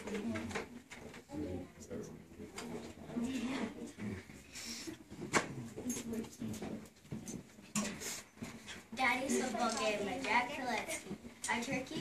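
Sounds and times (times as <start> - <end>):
children moving and murmuring: 0.0 - 12.0.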